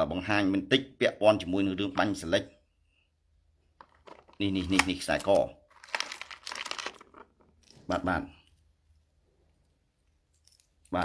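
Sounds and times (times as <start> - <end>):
crinkling and rustling: 3.7 - 8.0.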